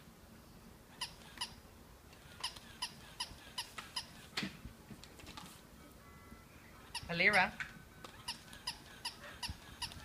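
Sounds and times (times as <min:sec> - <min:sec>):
toy dog electronic yaps: 0:00.9 - 0:01.6, 0:02.2 - 0:04.2, 0:08.1 - 0:10.0.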